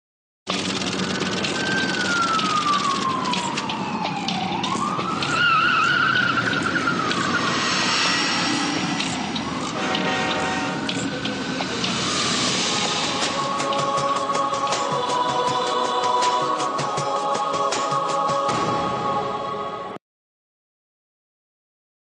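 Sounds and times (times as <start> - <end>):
scattered clicks: 0.5 - 5.4, 9.0 - 12.0
sliding tone: 5.2 - 14.8
steady whooshing noise: 6.6 - 20.0.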